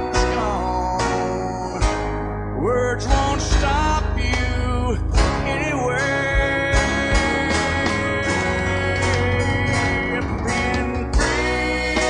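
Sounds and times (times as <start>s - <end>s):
country music with guitar: 0.0s - 12.0s.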